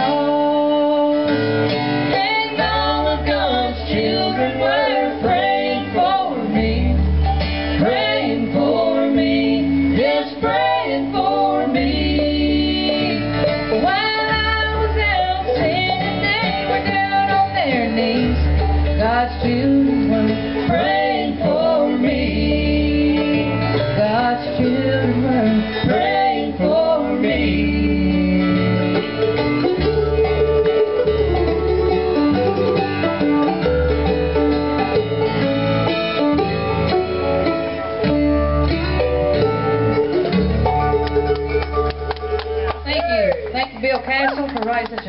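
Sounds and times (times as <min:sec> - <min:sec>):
lead melody: 0:00.0 - 0:44.1
acoustic guitar: 0:00.0 - 0:45.0
banjo: 0:00.0 - 0:45.0
upright bass: 0:00.0 - 0:45.0.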